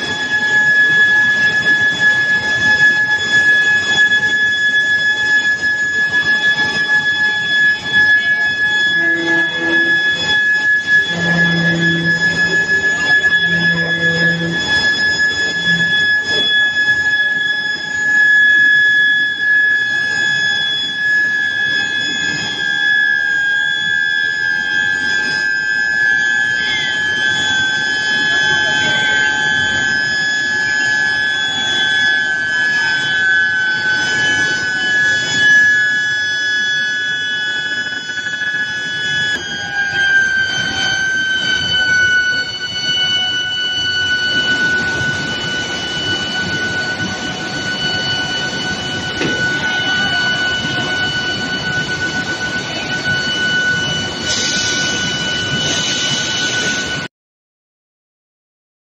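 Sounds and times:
furnace high-pitched whine: 0.0 - 57.1
mill machinery noise: 0.0 - 57.1.

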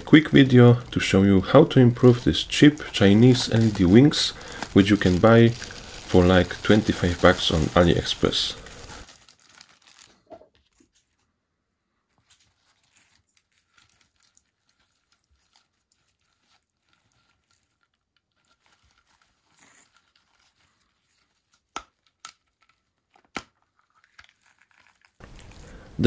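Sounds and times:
plastic sheeting crinkling: 0.0 - 11.3, 12.0 - 23.1, 23.7 - 26.0.

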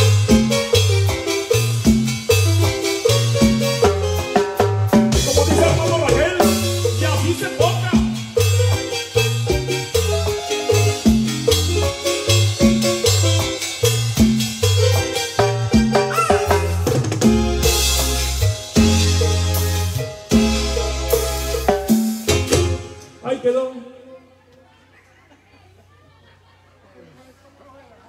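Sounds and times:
electric bass line: 0.0 - 23.1
drum kit: 0.0 - 23.2
keyboard: 0.0 - 24.2.

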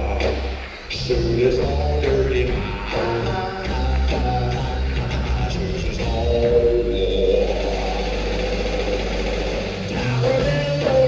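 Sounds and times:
live rock band playing: 0.0 - 11.0
low bass note: 5.9 - 9.0.

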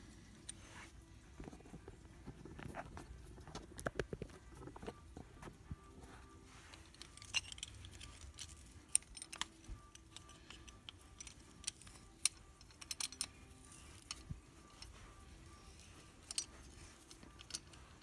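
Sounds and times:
metal clamp clicking: 7.0 - 15.0.

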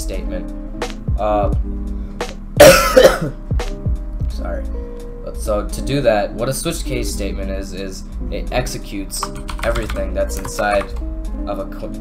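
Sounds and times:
background music with steady beat: 0.0 - 12.0
man coughing: 2.6 - 3.4.

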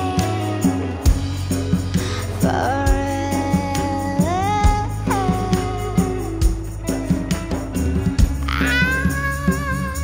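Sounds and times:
bass and drums beat: 0.0 - 10.0.

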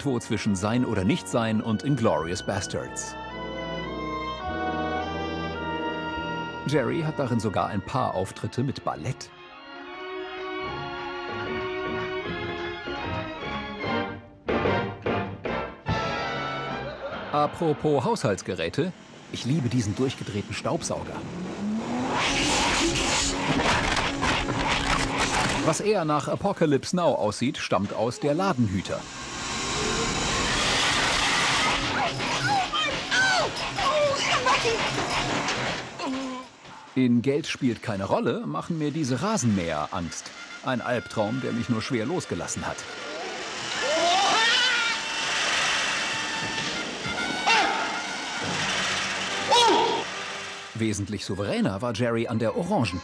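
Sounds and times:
steady whirring noise: 18.2 - 25.8, 28.4 - 36.7, 37.5 - 51.1
vacuum cleaner motor rising: 28.6 - 36.0, 38.6 - 50.8
rushing roar of air: 28.9 - 32.0.

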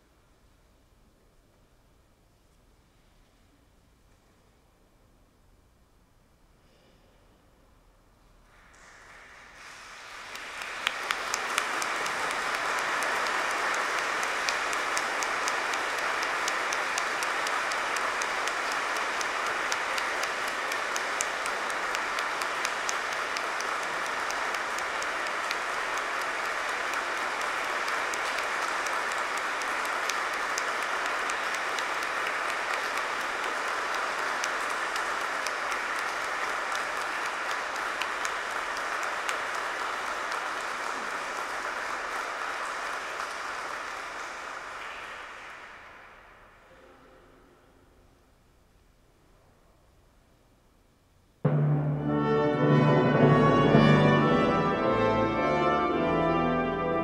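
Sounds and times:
crowd applauding: 8.5 - 47.0.

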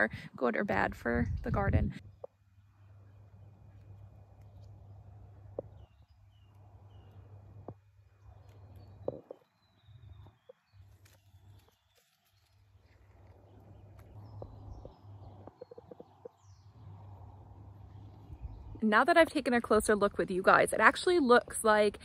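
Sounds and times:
faint bird chirps: 2.0 - 18.8
low rumble: 13.5 - 19.0.

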